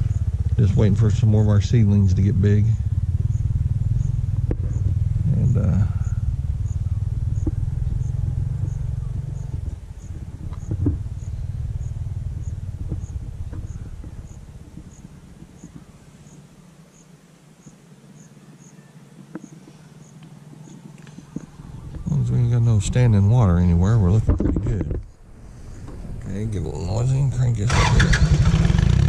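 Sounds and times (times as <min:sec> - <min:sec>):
insect chirping: 0:00.0 - 0:00.6, 0:02.3 - 0:22.3
low rumble: 0:00.0 - 0:16.7, 0:21.0 - 0:29.0.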